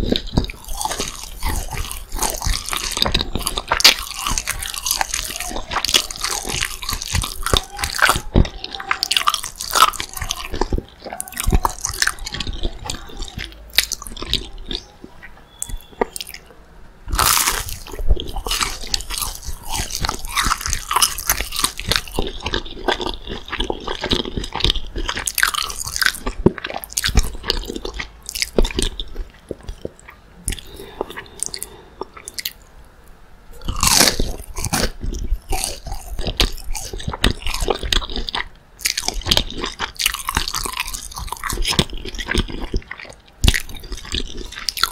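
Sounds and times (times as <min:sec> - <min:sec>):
crunching and chewing: 0:00.0 - 0:32.7, 0:33.5 - 0:44.9.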